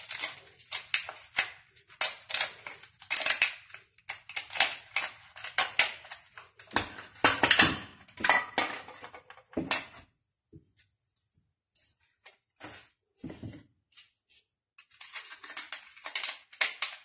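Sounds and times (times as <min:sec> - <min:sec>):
foil baking cups crinkling: 0:00.0 - 0:10.0, 0:14.8 - 0:17.0.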